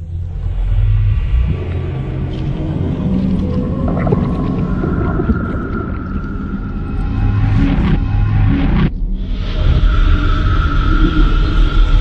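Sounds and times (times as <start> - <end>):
deep low rumble: 0.0 - 12.0.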